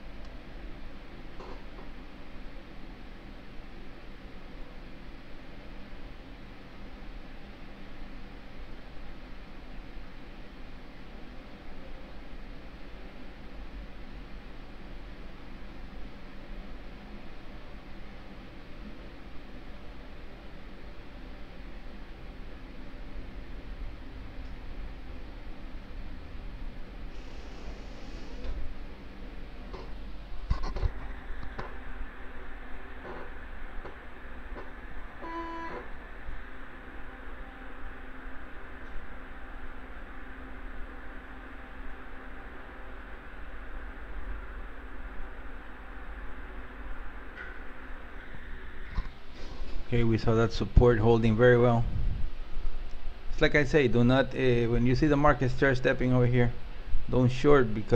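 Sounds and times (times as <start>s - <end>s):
low hum: 0.0s - 57.9s.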